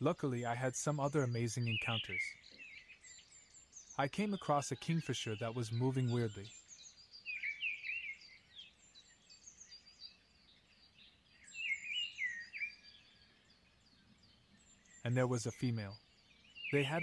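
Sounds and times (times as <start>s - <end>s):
birds chirping: 0.0s - 17.0s
faint outdoor hiss: 0.0s - 17.0s.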